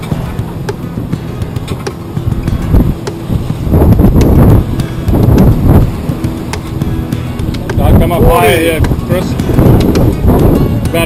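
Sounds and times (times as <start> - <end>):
water rushing along hull: 0.0 - 11.0
wind buffeting microphone: 0.0 - 11.0.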